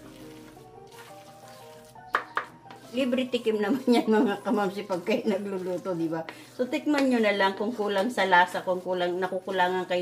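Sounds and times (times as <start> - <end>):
spatula scraping pot: 0.0 - 10.0
spatula stirring rice in metal pot: 0.0 - 10.0.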